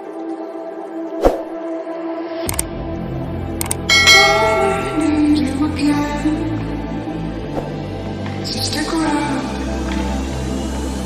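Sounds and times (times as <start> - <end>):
background music: 0.0 - 11.0
sharp clicks: 2.5 - 2.7, 3.6 - 3.9
bright bell chime: 3.9 - 5.8.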